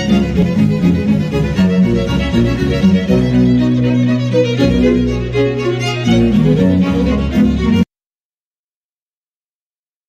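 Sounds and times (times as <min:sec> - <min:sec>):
bowed violin held notes: 0:00.0 - 0:07.9
low bass line: 0:00.0 - 0:07.9.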